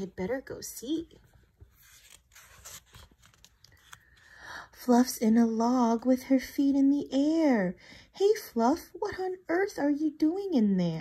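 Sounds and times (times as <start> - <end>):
book page turning: 1.2 - 4.4.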